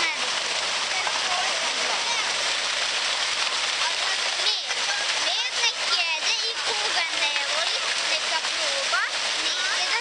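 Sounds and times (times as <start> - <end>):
child talking: 0.0 - 0.2, 0.9 - 2.4, 3.8 - 10.0
fountain water splashing: 0.0 - 10.0.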